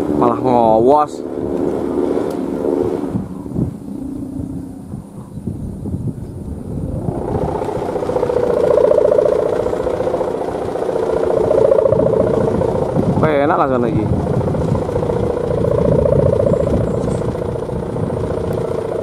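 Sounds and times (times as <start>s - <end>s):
kite string buzzing drone: 0.0s - 19.0s.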